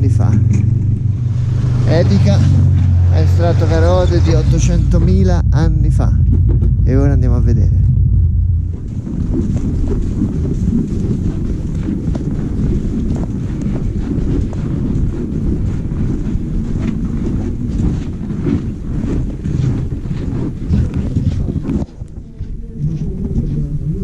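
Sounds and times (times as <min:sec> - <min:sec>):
wind buffeting on microphone: 0:00.0 - 0:24.0
footsteps crunching on snow: 0:08.7 - 0:23.7.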